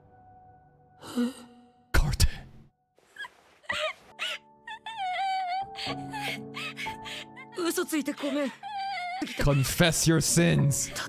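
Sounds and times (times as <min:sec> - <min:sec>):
girl crying whimpers: 0:03.2 - 0:09.8.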